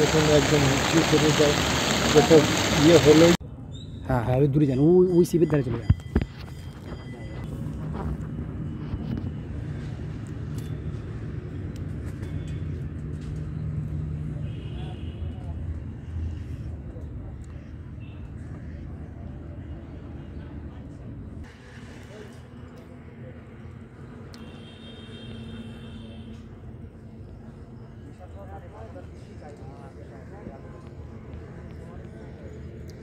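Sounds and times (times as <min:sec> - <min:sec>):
distant road traffic: 0:00.0 - 0:33.0.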